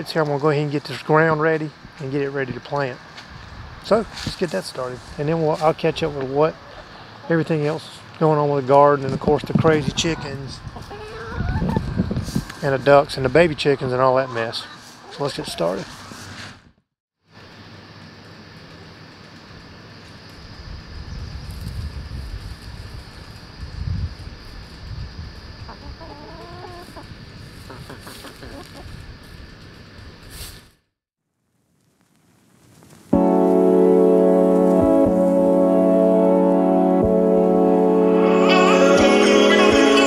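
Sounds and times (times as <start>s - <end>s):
background music: 33.2s - 40.0s.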